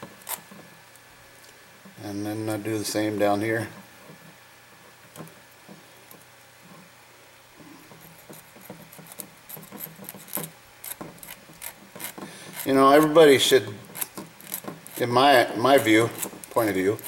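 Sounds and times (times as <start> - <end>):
file scraping on wire: 7.8 - 15.2, 15.8 - 17.0.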